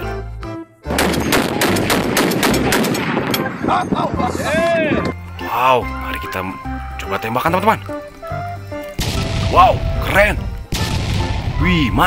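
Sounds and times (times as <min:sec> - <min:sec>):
rapid gunfire: 0:00.9 - 0:03.3, 0:10.7 - 0:11.6.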